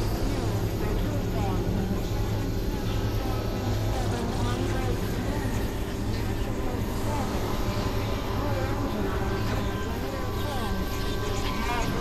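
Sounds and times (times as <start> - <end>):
low synthesizer drone: 0.0 - 12.0.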